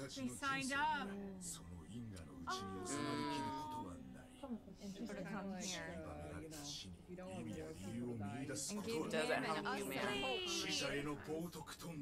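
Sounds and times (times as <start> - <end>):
high-pitched vocal cry: 2.5 - 3.8.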